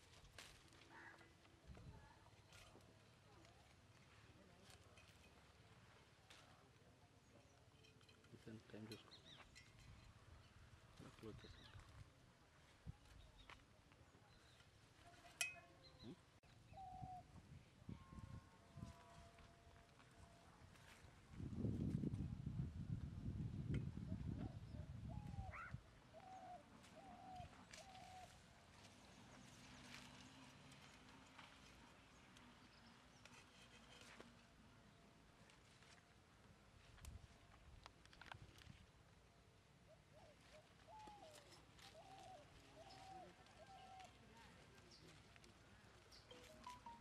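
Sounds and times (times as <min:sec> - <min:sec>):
faint rural ambience: 0:00.0 - 0:47.0
animal calls: 0:25.2 - 0:28.4.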